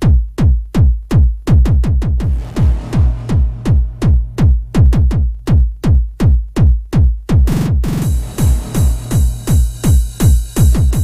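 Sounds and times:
distorted kick drum beat: 0.0 - 11.0.

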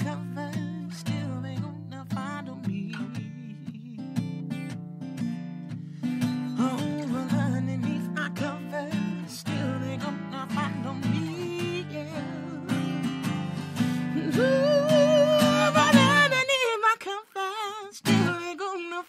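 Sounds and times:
person singing: 0.0 - 4.2, 6.5 - 19.0
acoustic guitar strumming: 0.0 - 18.9.

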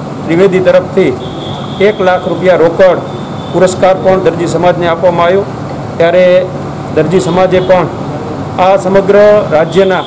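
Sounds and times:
man speaking into microphones: 0.3 - 1.2, 1.8 - 10.0.

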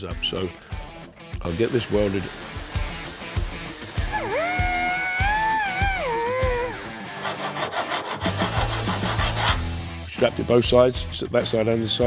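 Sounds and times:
music with steady drum beat: 0.0 - 7.2, 8.3 - 12.0.

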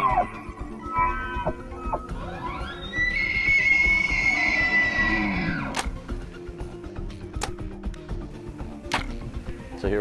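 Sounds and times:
elk bugling: 0.0 - 5.9.

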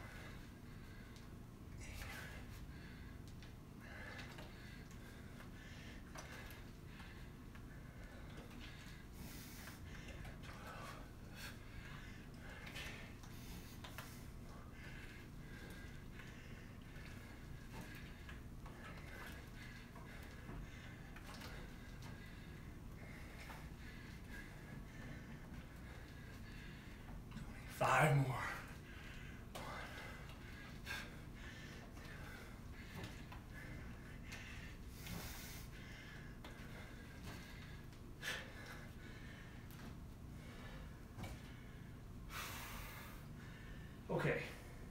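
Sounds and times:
faint room hum: 0.0 - 44.9
man breathing hard: 0.0 - 44.9.

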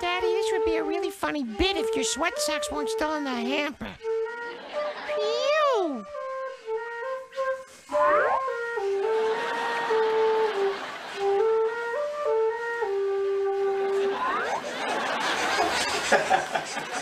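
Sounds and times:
wooden flute melody: 0.0 - 15.6
brief rising glide: 14.0 - 14.8.

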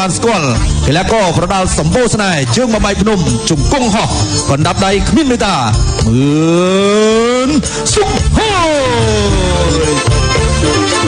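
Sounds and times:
man singing long rising note: 8.4 - 11.0.

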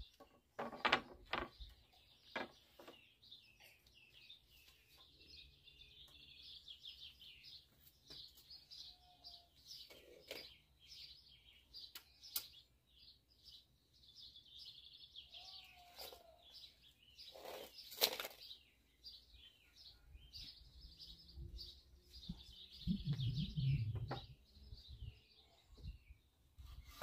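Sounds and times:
faint birdsong: 0.0 - 27.0.

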